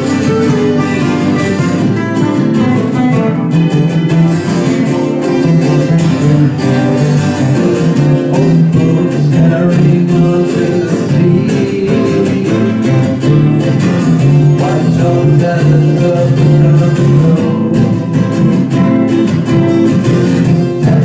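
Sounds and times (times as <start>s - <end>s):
acoustic guitars strummed: 0.0s - 21.0s.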